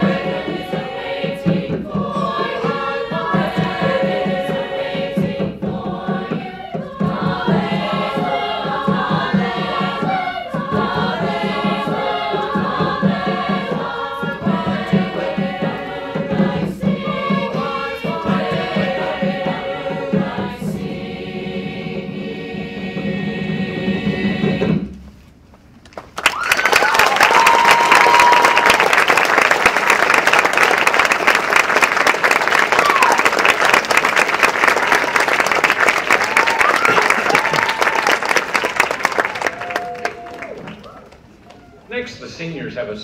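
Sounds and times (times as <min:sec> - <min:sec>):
mixed choir singing: 0:00.0 - 0:25.0
audience applause: 0:25.9 - 0:41.8
audience whooping: 0:26.2 - 0:41.9.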